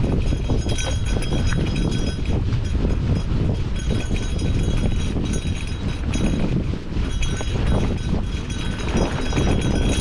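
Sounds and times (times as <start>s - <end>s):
bike rattling over bumps: 0.0s - 10.0s
bike tyres rumbling on trail: 0.0s - 10.0s.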